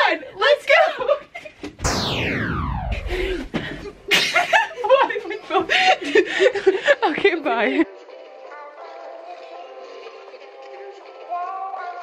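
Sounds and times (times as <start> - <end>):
young women laughing: 4.1 - 7.2.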